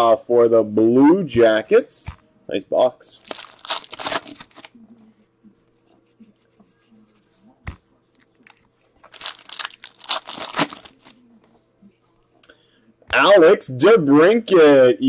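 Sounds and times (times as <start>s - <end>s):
foil wrapper tearing and crinkling: 3.2s - 4.7s, 8.4s - 11.2s.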